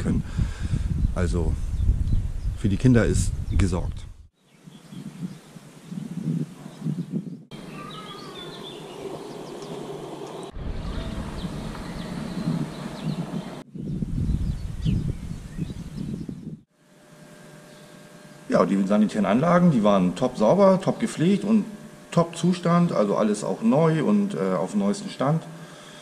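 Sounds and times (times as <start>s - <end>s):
wind buffeting microphone: 0.0s - 16.7s
birds singing: 4.4s - 16.6s.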